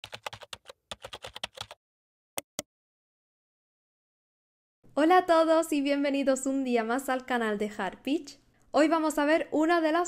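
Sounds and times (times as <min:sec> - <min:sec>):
computer keyboard typing: 0:00.0 - 0:01.8.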